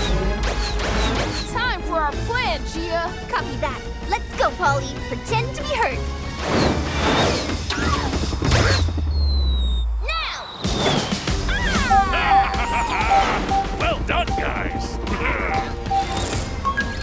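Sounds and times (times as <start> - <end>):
falling whistle: 9.1 - 13.7
cartoon music: 11.4 - 17.0
warbling chirpy creature cries: 11.5 - 13.5
short beeping tone: 13.1 - 15.1, 15.8 - 17.0.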